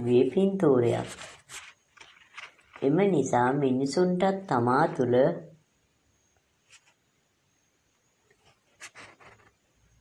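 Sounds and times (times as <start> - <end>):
person reading aloud: 0.0 - 1.4, 2.8 - 5.5.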